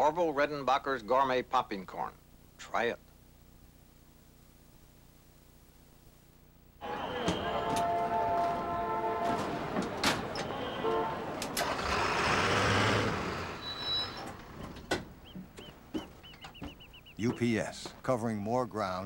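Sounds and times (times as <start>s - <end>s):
truck engine running: 8.8s - 17.3s.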